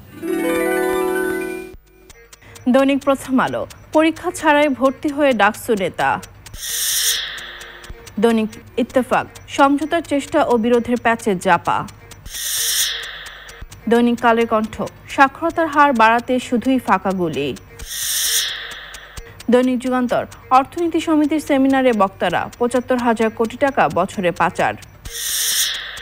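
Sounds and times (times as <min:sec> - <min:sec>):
swishing hiss effect: 0:06.4 - 0:07.9, 0:17.8 - 0:19.2.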